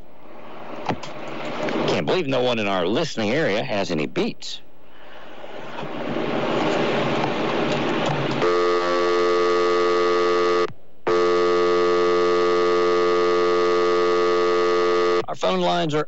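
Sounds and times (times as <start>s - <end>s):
steady telephone line tone: 8.4s - 15.3s
telephone line hiss: 8.4s - 15.3s.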